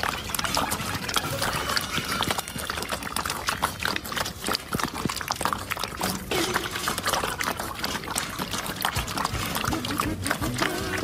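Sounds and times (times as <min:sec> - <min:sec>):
puppies lapping and chewing: 0:00.0 - 0:11.0
music: 0:09.7 - 0:11.0.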